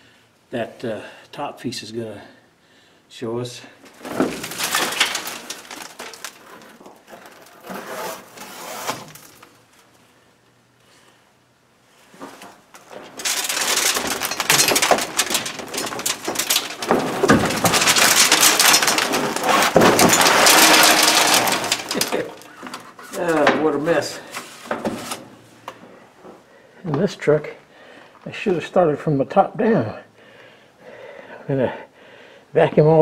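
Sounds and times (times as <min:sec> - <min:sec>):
debris scraping and falling: 0:03.8 - 0:09.7, 0:12.0 - 0:26.0
panel crackling and rustling: 0:03.8 - 0:10.0, 0:12.0 - 0:26.4.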